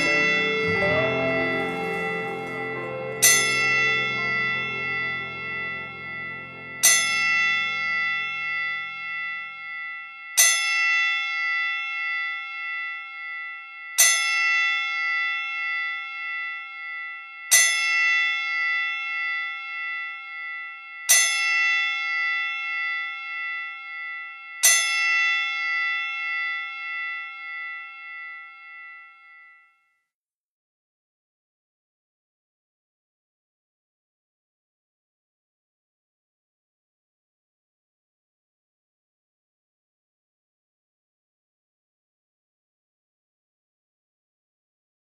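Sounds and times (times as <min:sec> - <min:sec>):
low music: 0:00.0 - 0:09.0
bell ringing: 0:00.0 - 0:29.8.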